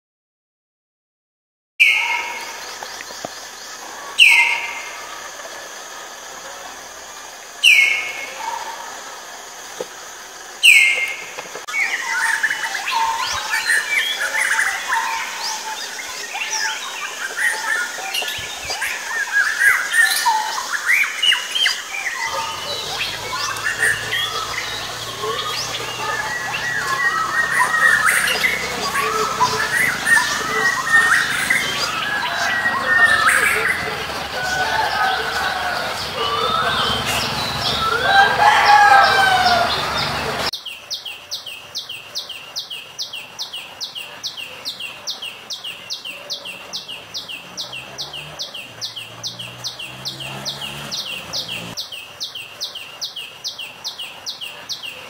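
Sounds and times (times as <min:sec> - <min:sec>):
chorus of bird chirps and whistles: 0:01.8 - 0:09.7, 0:10.4 - 0:55.0
sharp falling bird calls: 0:01.8 - 0:41.1.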